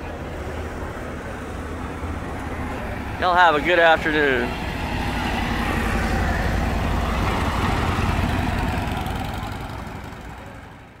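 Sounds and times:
motorcycle engines rumbling: 0.0 - 11.0.

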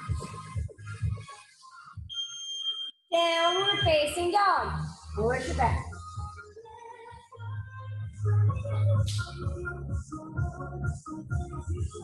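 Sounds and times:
faint background music: 0.0 - 12.0
timer beep: 2.1 - 4.2.

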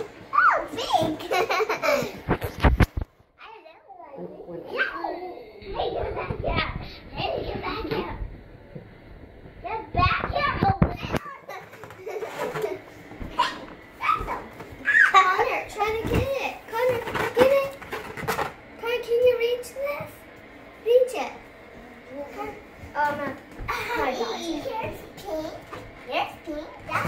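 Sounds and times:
children calling out: 13.4 - 15.6
children chattering: 22.0 - 25.6.

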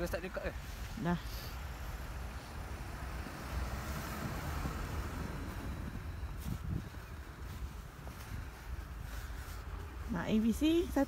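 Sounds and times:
wind rumbling on microphone: 0.6 - 11.0.

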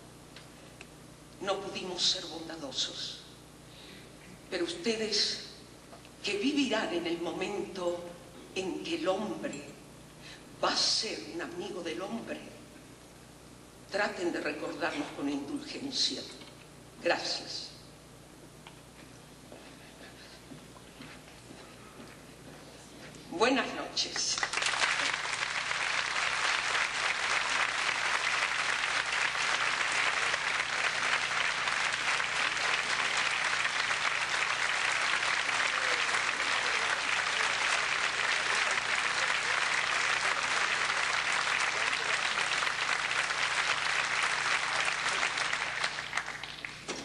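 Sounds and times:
audience applauding: 24.4 - 46.9.

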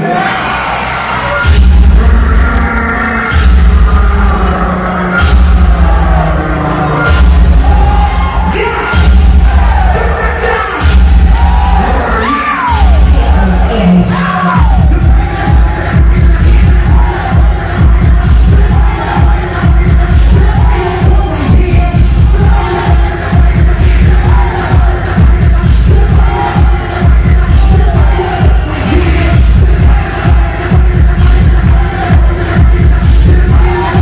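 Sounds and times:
crowd shouting and whooping: 0.0 - 34.0
dance track with heavy bass: 0.0 - 34.0.

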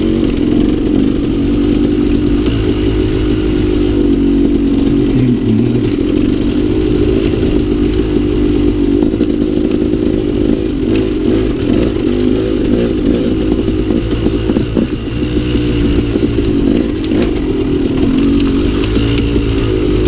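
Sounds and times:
two-stroke dirt bike engine revving: 0.0 - 20.0.

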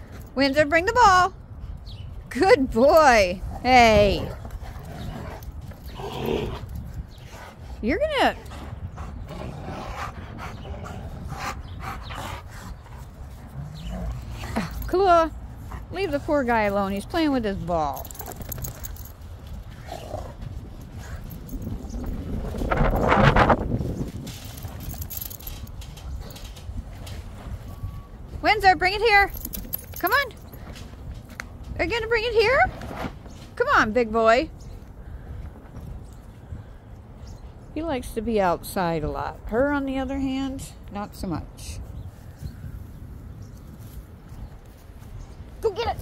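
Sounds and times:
wind rumbling on microphone: 1.2 - 33.6, 40.8 - 46.0.

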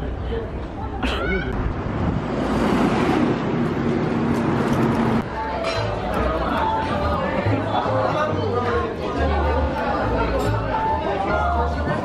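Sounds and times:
road traffic noise: 0.0 - 8.2.

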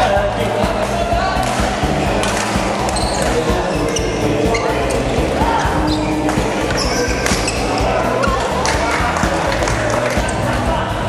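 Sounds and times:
hall hum and spectators: 0.0 - 11.0
rackets hitting shuttlecock: 1.4 - 4.1, 6.0 - 10.4
shoes squeaking on court floor: 2.2 - 10.4.

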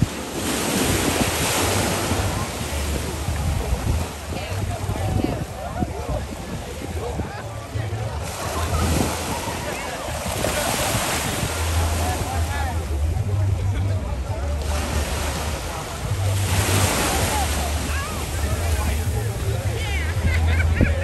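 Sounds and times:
ocean surf against rocks: 0.0 - 7.3, 8.2 - 13.2, 14.7 - 19.6
wind buffeting microphone: 0.0 - 13.4.

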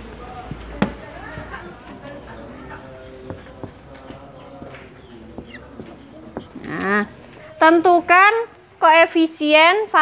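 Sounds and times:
marker tapping on whiteboard: 4.6 - 6.8.

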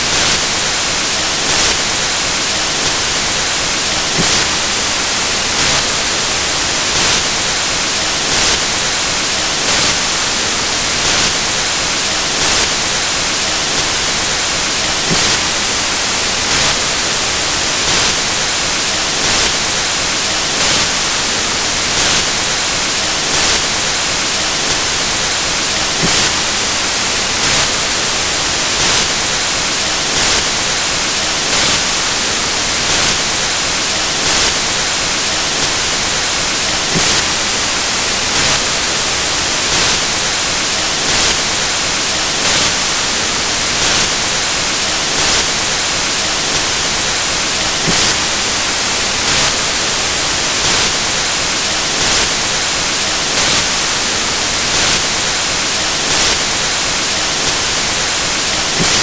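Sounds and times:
loud static hiss with soft pulse: 0.0 - 59.0.

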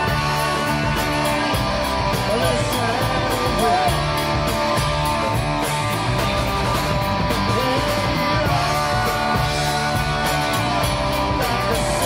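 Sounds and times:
bass guitar: 0.0 - 12.0
electric guitars: 0.0 - 12.0
steady drum beat: 0.0 - 12.0.

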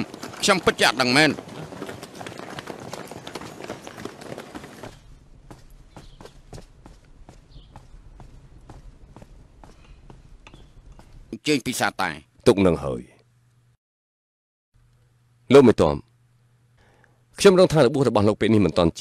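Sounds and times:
footsteps on hard ground: 0.0 - 11.3.

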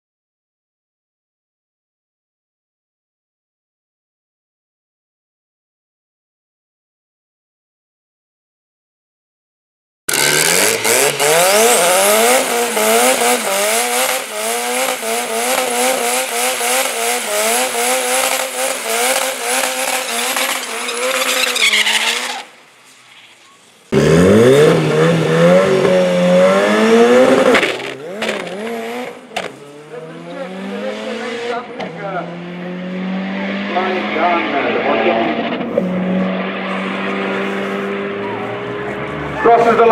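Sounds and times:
engine revving high: 10.1 - 22.5, 23.9 - 39.9
tyres spinning: 16.8 - 22.6.

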